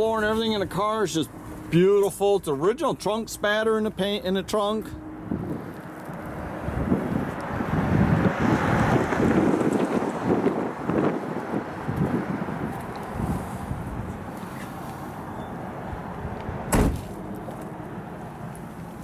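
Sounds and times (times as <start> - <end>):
wind buffeting microphone: 5.1 - 14.3.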